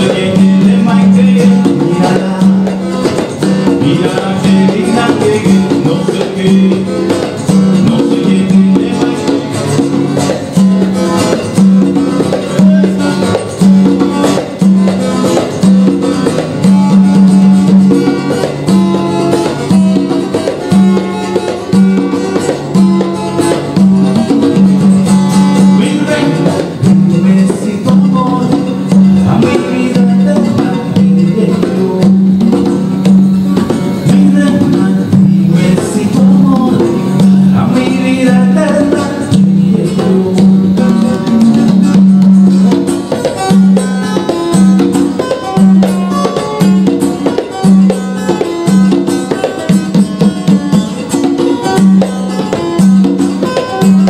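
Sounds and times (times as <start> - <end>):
acoustic guitar: 0.0 - 54.0
conga drum strokes: 0.0 - 54.0
repeating low bass figure: 21.8 - 42.9.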